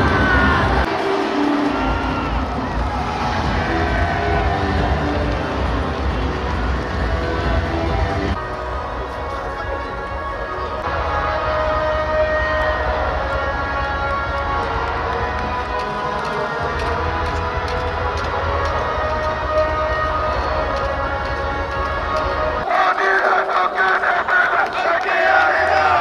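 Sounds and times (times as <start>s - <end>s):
background music with bass line: 0.0s - 22.6s
crowd cheering and shouting: 0.0s - 26.0s.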